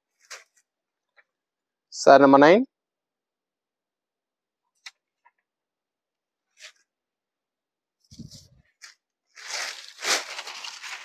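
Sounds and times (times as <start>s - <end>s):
fabric rustling: 8.1s - 11.0s.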